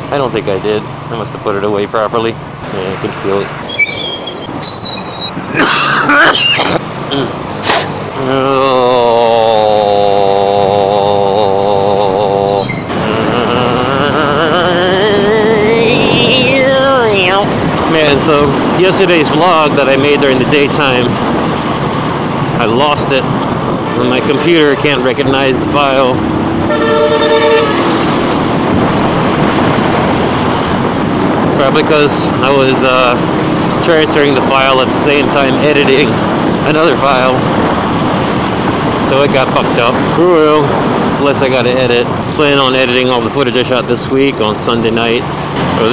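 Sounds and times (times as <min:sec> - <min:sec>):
wind noise: 0:00.0 - 0:45.9
man singing long notes with vibrato: 0:08.2 - 0:17.4
motorcycle engine: 0:20.6 - 0:31.6
vehicle horn blaring: 0:26.6 - 0:28.0.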